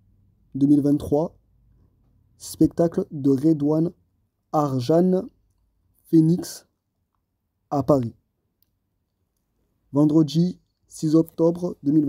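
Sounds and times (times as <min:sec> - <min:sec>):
narrator speaking: 0:00.6 - 0:01.4, 0:02.4 - 0:05.4, 0:06.0 - 0:06.8, 0:07.7 - 0:08.2, 0:09.9 - 0:12.0.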